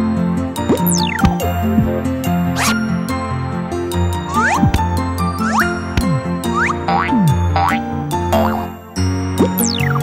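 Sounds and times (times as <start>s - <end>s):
bright children's music: 0.0s - 10.0s
cartoon pitch glide effects: 4.3s - 4.7s.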